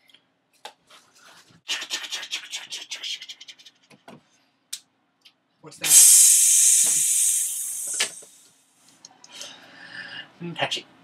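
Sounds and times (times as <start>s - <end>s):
loud hiss: 5.8s - 8.5s.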